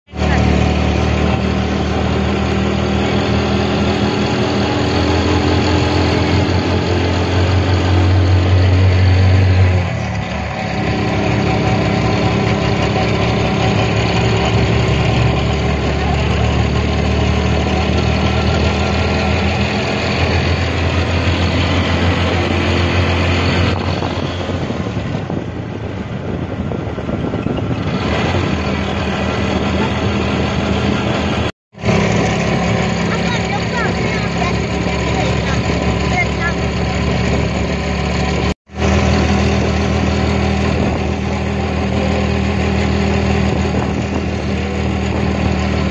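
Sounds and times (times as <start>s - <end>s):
road noise: 0.1s - 45.9s
vehicle engine running: 0.1s - 45.9s
wind noise: 0.4s - 33.0s, 33.8s - 45.9s.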